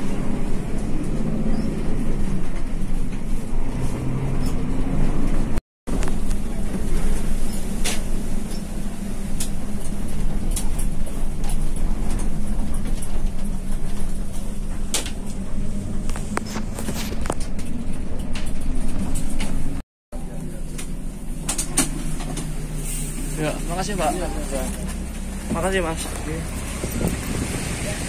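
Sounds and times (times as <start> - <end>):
diesel bus engine running: 0.0 - 28.0
bodywork clicks and rattles: 9.3 - 19.8.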